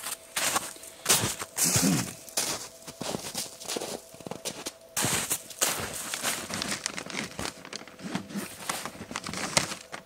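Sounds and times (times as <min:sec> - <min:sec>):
plastic wrapping crinkling: 0:02.9 - 0:10.0.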